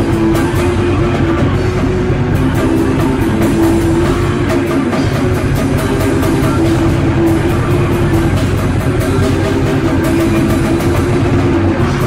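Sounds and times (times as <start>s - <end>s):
black metal with distorted guitars: 0.0s - 12.0s.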